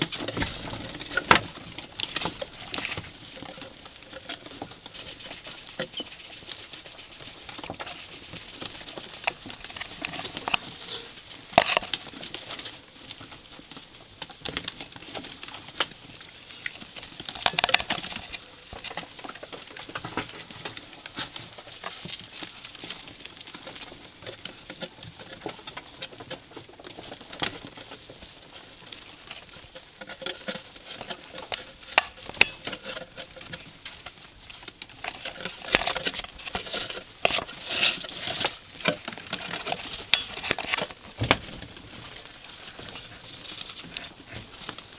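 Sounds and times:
rats scrabbling on cardboard and plastic: 0:00.0 - 0:44.9.

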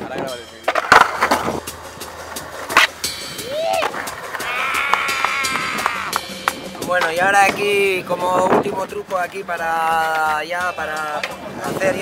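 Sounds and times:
skateboard clacking on ground: 0:00.0 - 0:12.0
skateboard rolling on concrete: 0:00.0 - 0:12.0
person shouting: 0:03.4 - 0:06.2.

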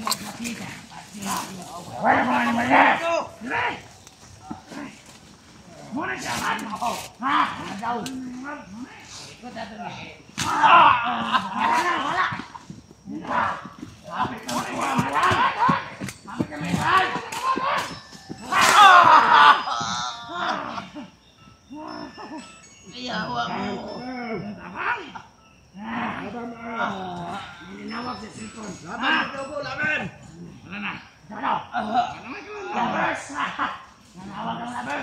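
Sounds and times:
people shouting excitedly: 0:01.3 - 0:03.9, 0:10.4 - 0:21.1, 0:25.8 - 0:35.0.

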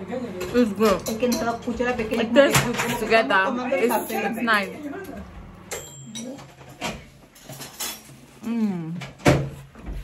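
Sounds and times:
light ringing clink: 0:05.7 - 0:06.4.

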